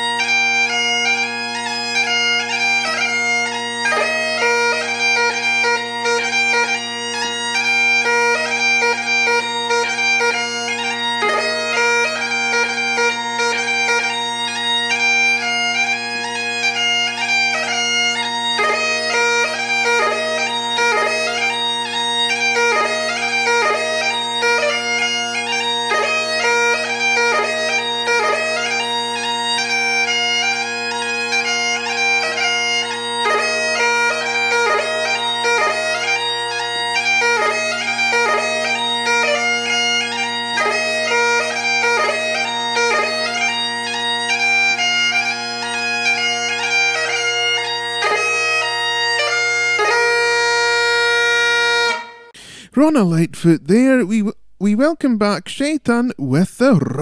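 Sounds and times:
bagpipes playing a tune: 0.0s - 52.6s.

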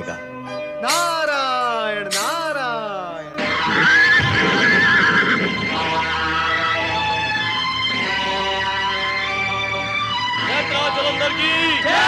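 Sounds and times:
horse whinnying: 3.6s - 5.6s.

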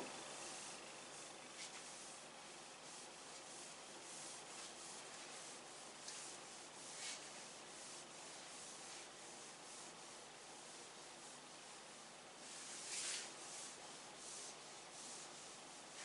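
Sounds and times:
steady hiss: 0.0s - 16.0s.

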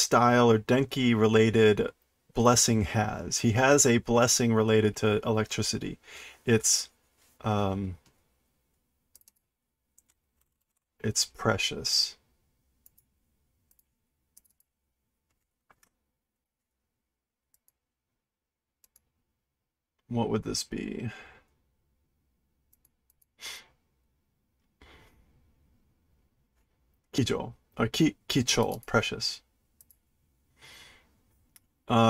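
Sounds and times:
faint clicks: 8.0s - 9.4s, 12.8s - 13.1s, 29.8s - 30.0s.

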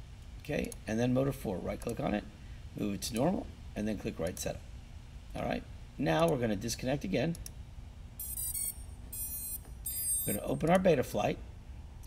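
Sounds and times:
drone motors beeping: 8.2s - 10.5s.

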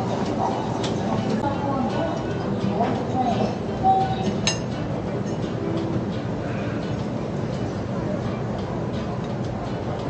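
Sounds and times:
restaurant room rumble: 0.0s - 10.0s.

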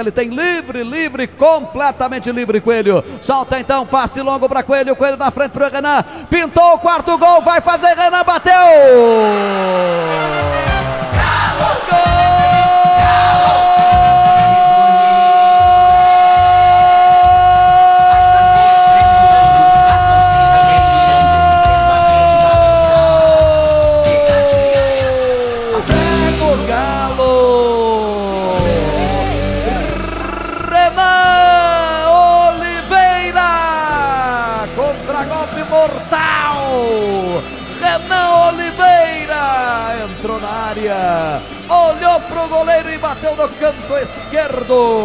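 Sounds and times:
commentator's long goal cry: 8.8s - 32.1s
music: 9.0s - 45.0s
rhythmic jingle: 18.2s - 32.6s.

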